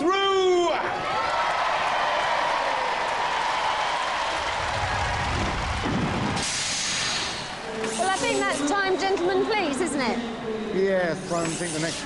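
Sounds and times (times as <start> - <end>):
audience cheering and applauding: 0.8 - 7.7.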